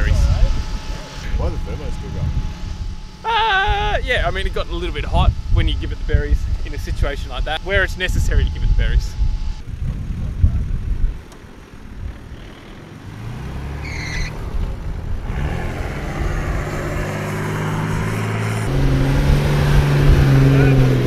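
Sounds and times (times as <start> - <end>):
wind rumble on microphone: 0.0 - 12.5, 14.3 - 21.0
engine revving under load: 0.0 - 21.0.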